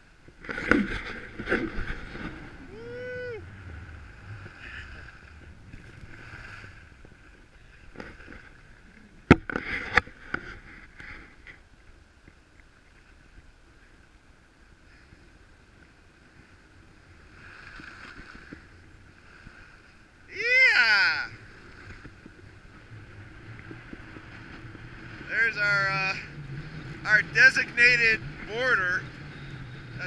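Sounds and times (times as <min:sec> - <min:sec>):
skis scraping over snow: 0:21.4 - 0:30.0.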